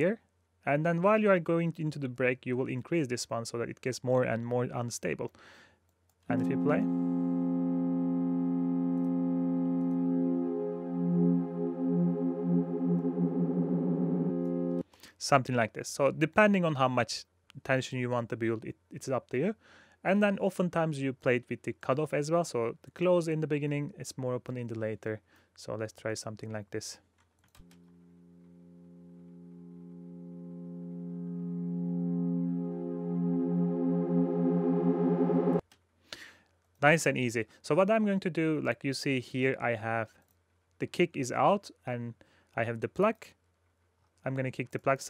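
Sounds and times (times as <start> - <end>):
synth pad chord detuning: 6.3 - 14.8, 27.7 - 35.6.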